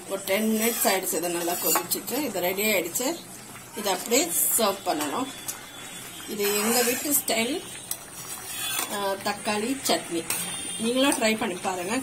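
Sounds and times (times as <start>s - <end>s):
ladle stirring thick chutney: 0.0s - 12.0s
ladle scraping and clinking pan: 0.4s - 2.0s, 6.3s - 7.2s, 7.9s - 9.2s.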